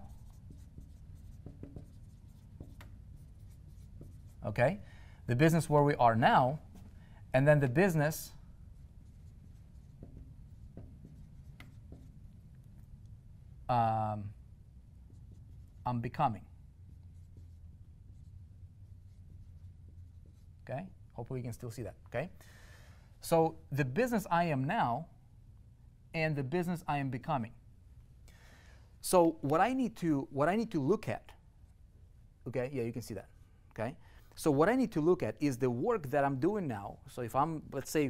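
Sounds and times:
marker writing on whiteboard: 0.0 - 4.8, 8.2 - 13.1, 14.8 - 20.6
low steady hum: 0.0 - 38.0.

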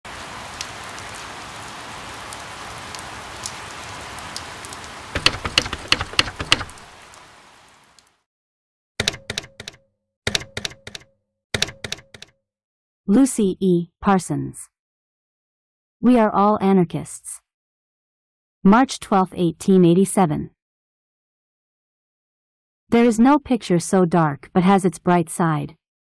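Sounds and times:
steady rain: 0.1 - 8.2
sharp clicks: 5.2 - 6.8, 9.0 - 12.4.

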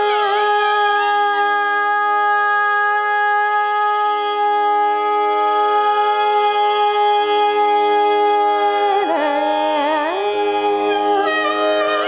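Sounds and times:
woman singing a long note: 0.0 - 6.7, 8.4 - 12.0
tanpura drone: 0.0 - 12.0
violin holding a note: 1.1 - 12.0.

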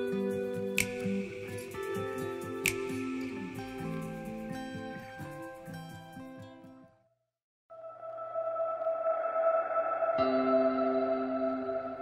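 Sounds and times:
ambient drone music: 7.7 - 12.0.

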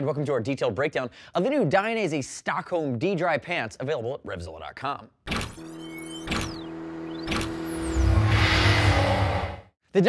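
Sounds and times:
steady drone: 6.5 - 9.7
whooshes: 7.3 - 9.7.

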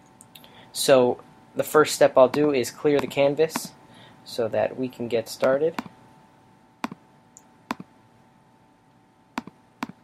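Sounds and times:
computer mouse clicking: 6.8 - 7.9, 9.4 - 10.0.

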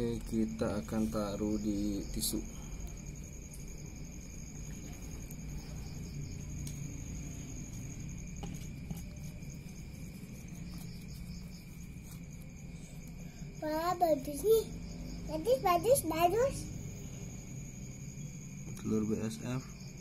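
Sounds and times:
crickets trilling: 0.0 - 20.0
pulsing insect chirp: 0.0 - 20.0.

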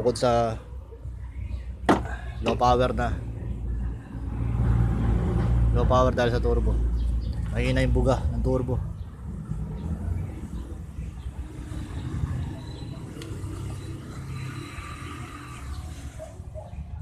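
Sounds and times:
diesel engine rumbling: 0.0 - 17.0.

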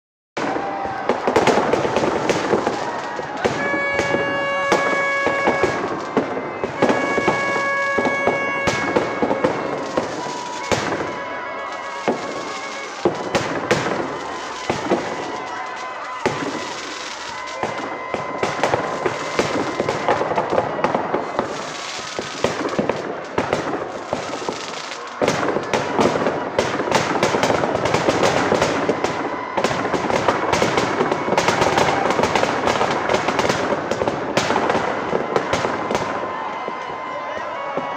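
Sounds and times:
firecrackers crackling and popping: 0.4 - 37.9.

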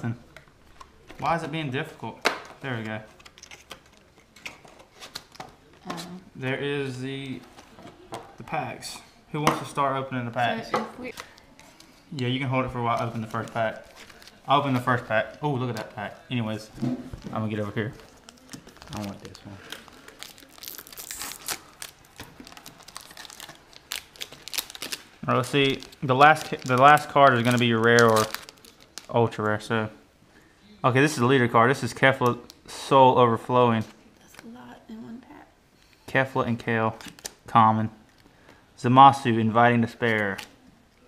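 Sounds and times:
foil packs crinkling: 12.9 - 16.2, 17.2 - 29.2.

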